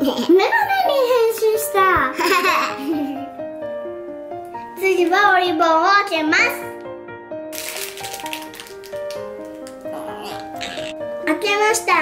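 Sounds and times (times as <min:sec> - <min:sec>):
background music simple melody: 0:00.0 - 0:12.0
plastic packaging crinkling: 0:07.5 - 0:10.9.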